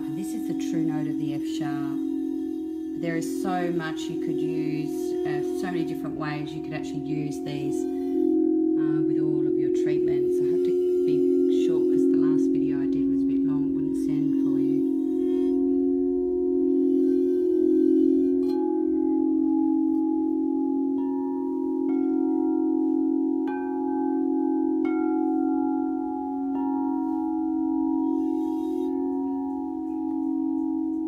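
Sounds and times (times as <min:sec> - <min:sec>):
deep pulsing singing bowl hum: 0:00.0 - 0:31.0
mallet strikes on singing bowls: 0:00.0 - 0:31.0.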